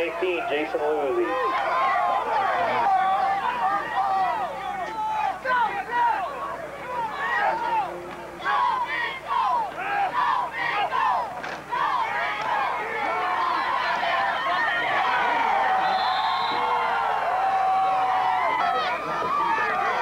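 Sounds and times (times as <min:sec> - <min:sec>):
crowd shouting and cheering: 0:00.0 - 0:20.0.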